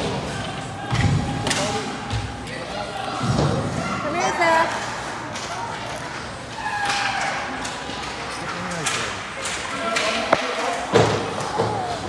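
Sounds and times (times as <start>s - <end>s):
arena background noise: 0.0s - 12.0s
thud against rink boards: 9.4s - 11.9s.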